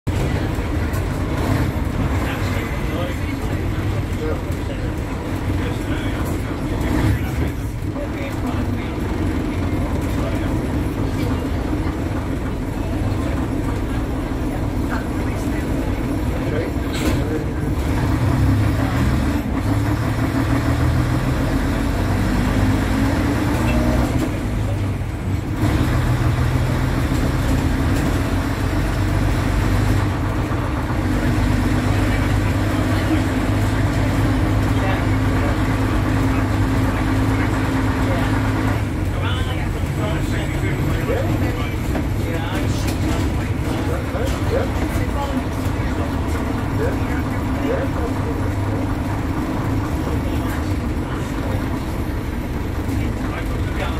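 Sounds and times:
bus engine running: 0.0s - 53.9s.

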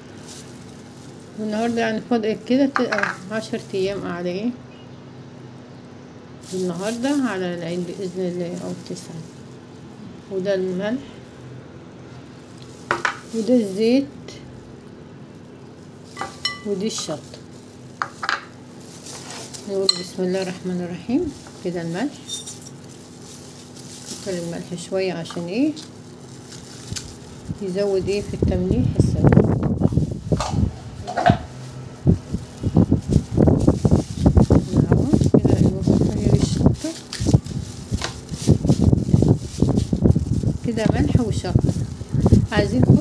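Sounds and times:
salt grains scraping on glass: 16.0s - 24.6s
containers rattling clatter: 30.3s - 31.6s.

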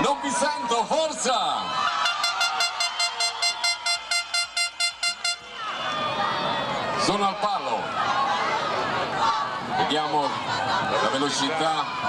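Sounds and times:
horn short rapid toots: 2.0s - 5.5s.

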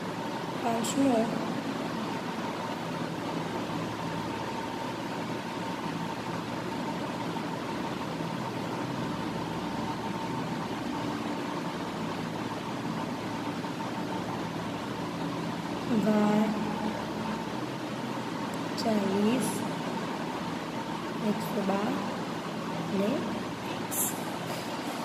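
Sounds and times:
background hiss and hum: 0.0s - 25.0s.

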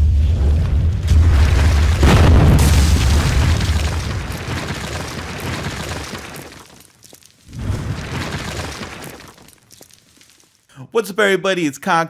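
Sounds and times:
wall crashing and shattering: 1.0s - 10.4s
falling debris ticks: 1.3s - 10.6s.

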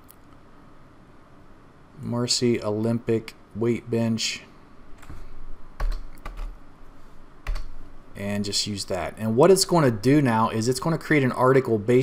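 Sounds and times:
computer keyboard keystrokes: 5.8s - 6.6s, 7.4s - 7.7s.

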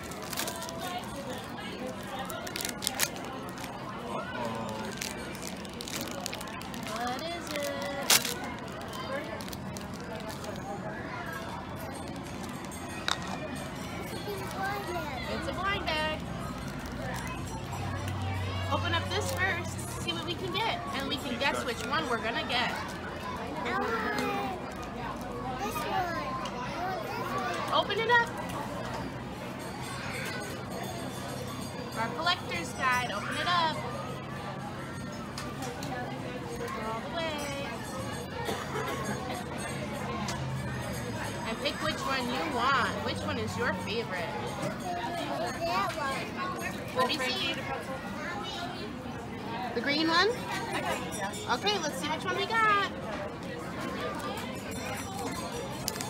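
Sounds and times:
foil wrapper crinkling and tearing: 0.0s - 1.0s, 2.1s - 3.8s, 4.5s - 10.6s
people chattering: 0.0s - 56.0s.

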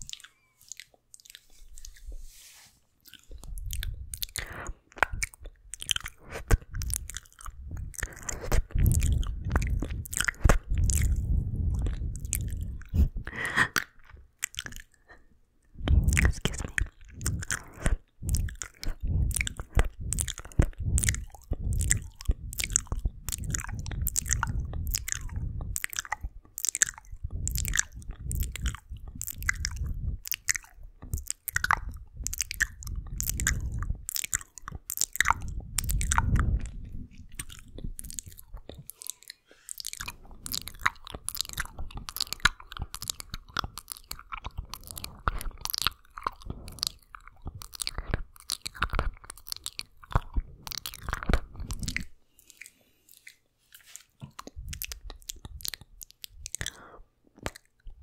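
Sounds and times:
wet mouth clicks and smacks: 0.0s - 2.1s, 3.0s - 58.0s
low rumble from mic contact: 6.2s - 13.4s, 15.8s - 26.4s, 27.0s - 34.1s, 35.2s - 38.1s.

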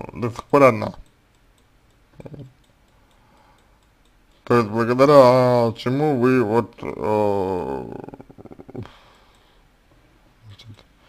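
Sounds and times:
faint regular ticking: 0.0s - 11.0s
man's voice murmuring: 2.2s - 2.5s, 4.5s - 8.9s.

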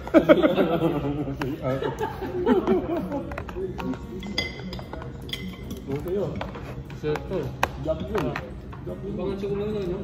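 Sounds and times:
metal spoon clinking on a plate: 4.1s - 6.6s.

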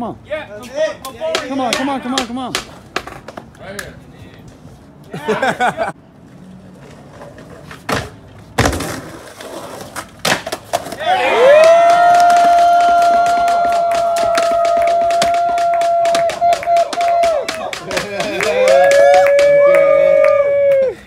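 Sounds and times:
skateboard hitting ramp: 7.4s - 18.2s
person whooping: 11.0s - 21.0s
people clapping: 11.3s - 21.0s.

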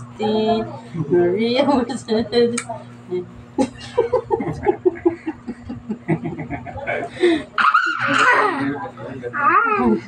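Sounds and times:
people laughing: 3.6s - 8.9s.

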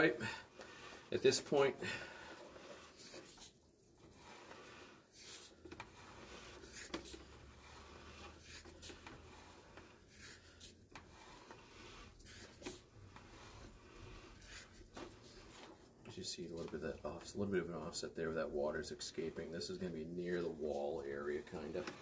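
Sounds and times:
cable scraping in pipe: 0.0s - 22.0s.

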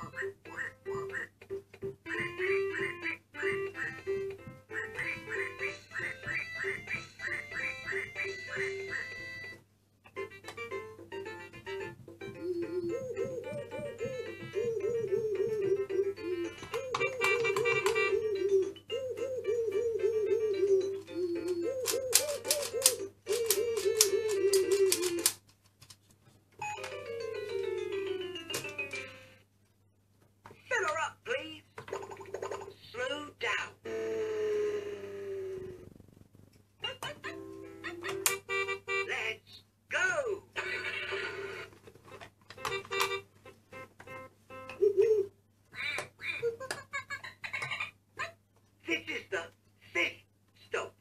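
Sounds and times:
toy playing electronic tunes: 0.0s - 9.6s, 10.2s - 25.0s, 37.9s - 39.2s, 42.6s - 44.9s
toy warbling tone: 12.4s - 25.3s.

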